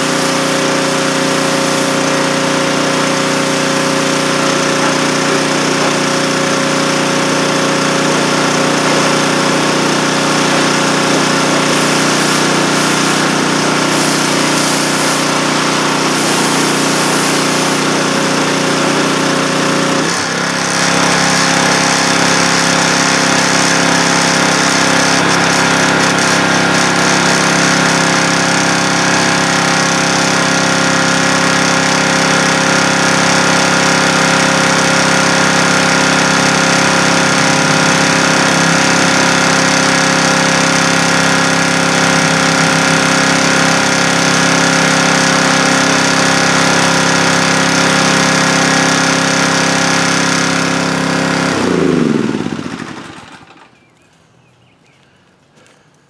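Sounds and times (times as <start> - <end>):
pressure washer engine running: 0.0 - 54.0.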